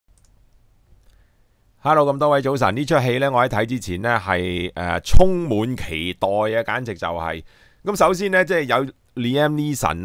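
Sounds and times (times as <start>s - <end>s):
computer mouse clicks: 0.1s - 1.2s.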